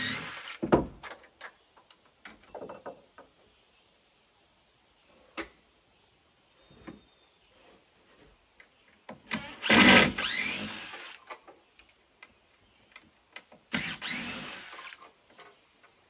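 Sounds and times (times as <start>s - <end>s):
power drill running: 0.0s - 0.6s, 9.3s - 11.2s, 13.7s - 15.0s.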